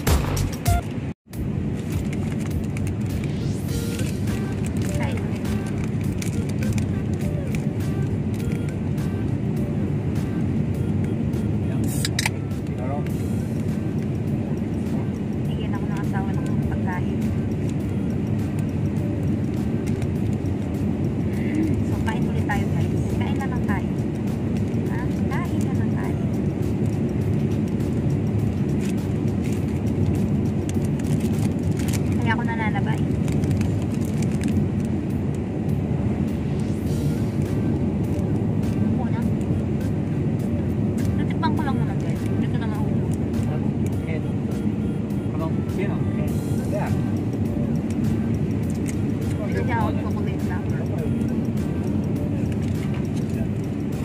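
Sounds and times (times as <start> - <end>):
road and engine noise in car: 0.0 - 54.0.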